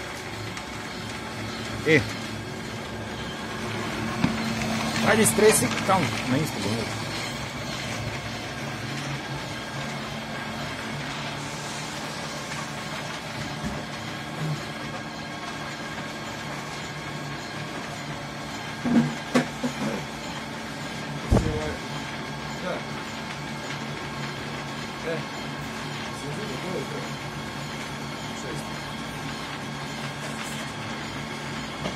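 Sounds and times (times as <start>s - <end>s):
pellet press machine hum: 0.0s - 31.9s.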